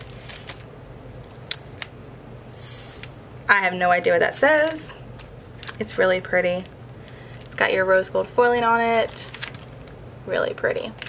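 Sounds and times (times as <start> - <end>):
plastic wrapping handling noise: 0.0 - 2.0, 4.4 - 7.9, 8.9 - 10.0.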